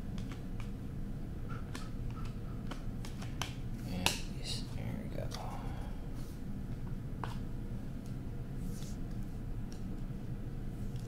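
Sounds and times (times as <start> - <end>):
low room hum: 0.0 - 11.0
cards clicking and tapping: 0.2 - 0.8, 1.6 - 4.3.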